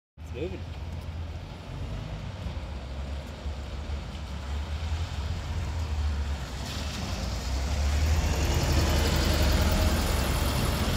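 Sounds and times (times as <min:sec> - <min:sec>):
bus engine rumbling: 0:00.3 - 0:10.9.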